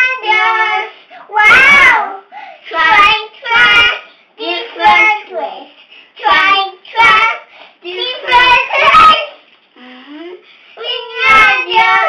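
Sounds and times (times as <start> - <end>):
children singing: 0.0 - 5.4, 6.2 - 9.4, 10.8 - 12.0.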